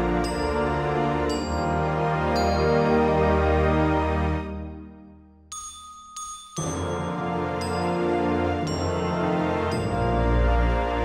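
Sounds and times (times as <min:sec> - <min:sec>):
instrumental music: 0:00.0 - 0:11.0
bright bell-like chime: 0:05.5 - 0:10.1.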